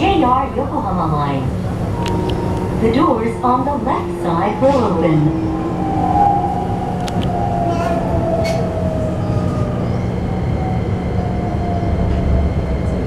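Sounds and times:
train motors whining: 0:00.0 - 0:13.0.

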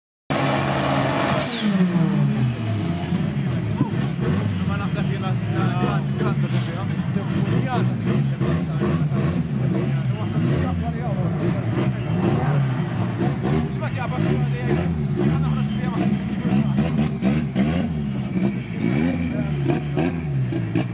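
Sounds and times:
car engine revving high: 0:00.3 - 0:20.9.

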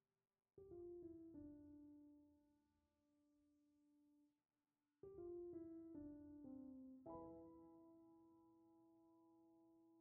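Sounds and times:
piano music: 0:00.6 - 0:02.2, 0:05.0 - 0:10.0.

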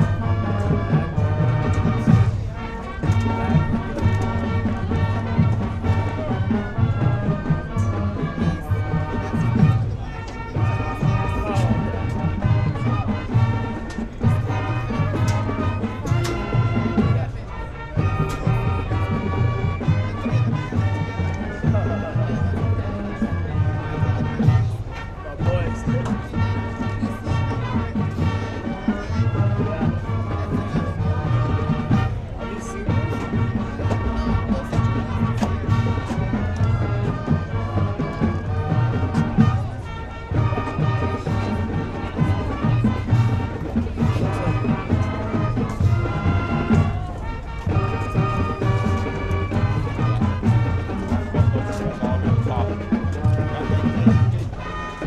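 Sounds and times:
marching band playing: 0:00.0 - 0:55.0.

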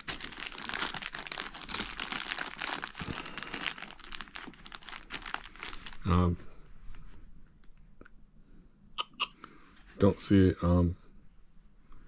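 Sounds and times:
plastic bag crinkling: 0:00.0 - 0:06.4.

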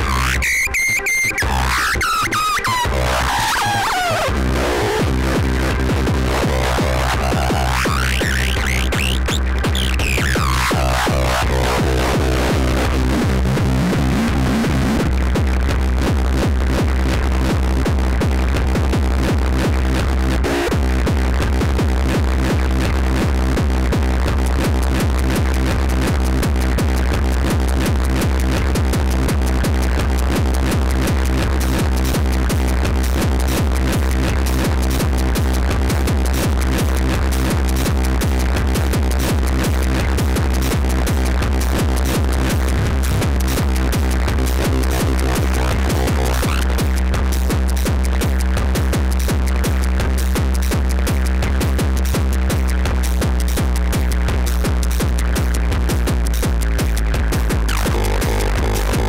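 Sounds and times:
deep bass drone: 0:00.0 - 0:59.0
kick drum pulse: 0:05.0 - 0:59.0.

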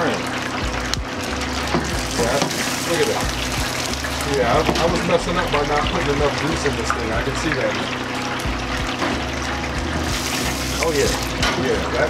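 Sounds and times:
food sizzling in deep fryer: 0:00.0 - 0:12.0.

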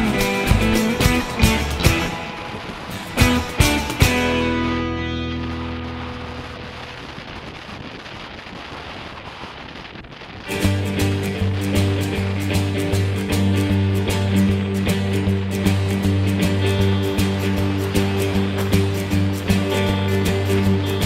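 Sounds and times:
hard rock music: 0:00.0 - 0:06.8, 0:10.5 - 0:21.0
music with strong bass: 0:00.0 - 0:08.1, 0:10.4 - 0:21.0.

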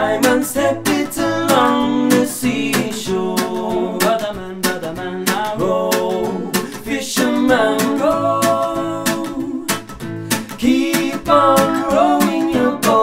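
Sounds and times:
acoustic guitar strumming: 0:00.0 - 0:13.0
voices holding long sung notes: 0:05.6 - 0:09.7, 0:10.6 - 0:13.0.

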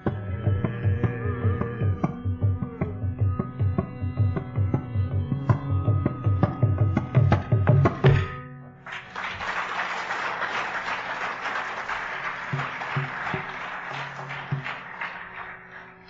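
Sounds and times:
audience applauding: 0:08.9 - 0:16.0.

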